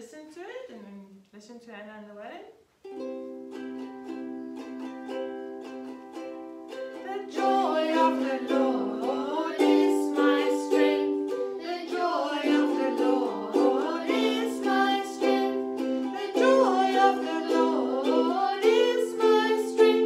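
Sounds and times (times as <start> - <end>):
ukulele strummed: 2.8 - 20.0
woman and children singing: 6.9 - 20.0.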